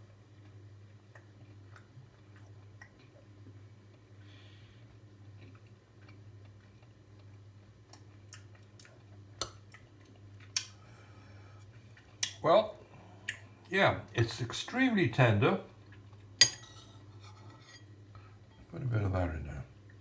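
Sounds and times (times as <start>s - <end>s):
steady low hum: 0.0s - 20.0s
person chewing meat: 4.9s - 12.4s.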